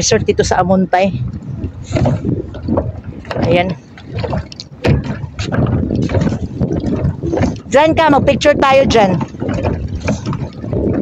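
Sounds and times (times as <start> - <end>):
water moving around dock: 0.0 - 11.0
wind on microphone: 0.0 - 11.0.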